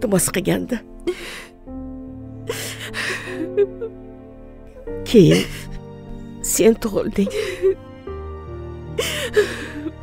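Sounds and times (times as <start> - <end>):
soft music with held notes: 0.0 - 10.0
woman sobbing breath: 1.0 - 1.6, 2.5 - 3.7, 7.2 - 7.8, 9.0 - 10.0.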